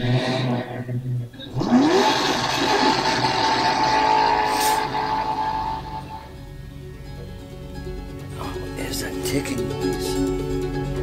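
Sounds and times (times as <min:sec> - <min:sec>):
car engine revving: 0:00.0 - 0:06.5.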